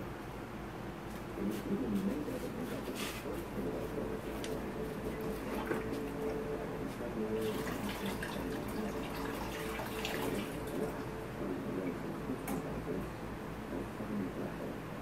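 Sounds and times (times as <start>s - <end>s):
steady hum: 0.0s - 15.0s.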